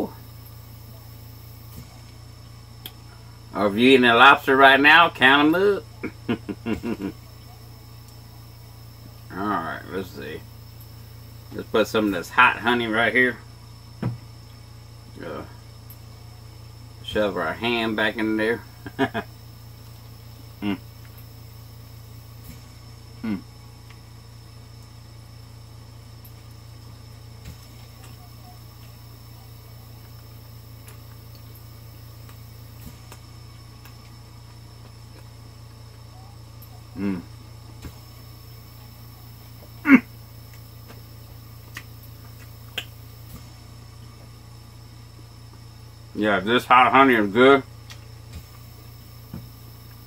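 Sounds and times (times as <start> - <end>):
steady low hum: 0.0 - 50.0
man chewing food: 18.9 - 25.0, 26.2 - 44.5, 47.7 - 50.0
man humming mm: 20.6 - 21.0, 23.2 - 23.6, 36.9 - 37.4, 39.7 - 40.2.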